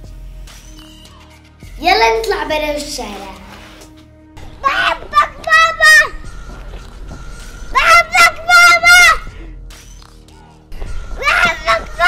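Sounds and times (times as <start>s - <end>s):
girl shouting sing-song call: 1.8s - 3.4s, 4.6s - 6.2s, 7.7s - 9.3s, 11.2s - 12.0s.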